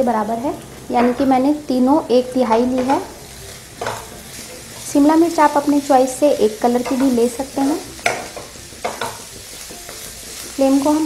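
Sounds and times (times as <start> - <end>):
vegetables sizzling in a wok: 0.0 - 11.0
stirring stroke through vegetables: 2.8 - 11.0.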